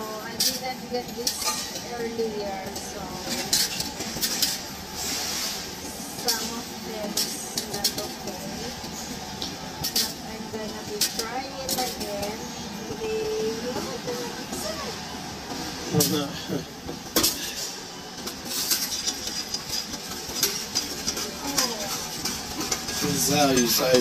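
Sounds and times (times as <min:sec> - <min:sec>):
coins clinking on metal tray: 0:18.5 - 0:24.0.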